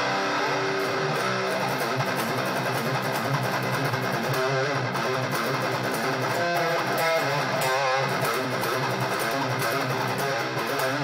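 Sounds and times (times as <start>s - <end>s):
distorted electric guitar metal riff: 0.0s - 11.0s.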